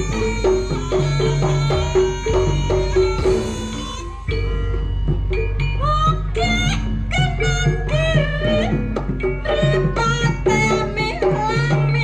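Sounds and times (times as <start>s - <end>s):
gamelan music: 0.0s - 12.0s.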